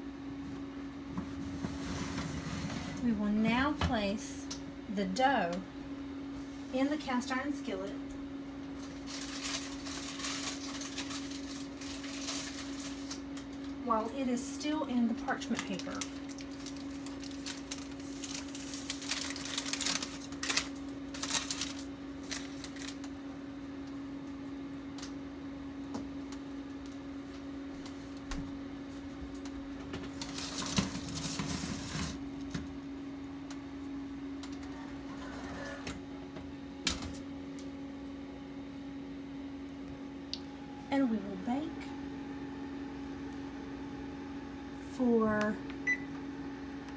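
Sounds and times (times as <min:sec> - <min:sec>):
steady low hum: 0:00.0 - 0:46.9
parchment paper crinkling: 0:08.8 - 0:13.8, 0:15.1 - 0:23.2, 0:30.1 - 0:32.2.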